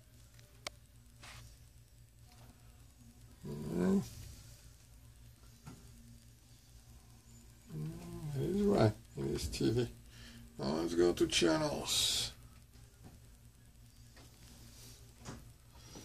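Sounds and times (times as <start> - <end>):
steady low hum: 0.0 - 16.0
man speaking: 3.4 - 4.1, 7.7 - 10.0, 10.6 - 12.4.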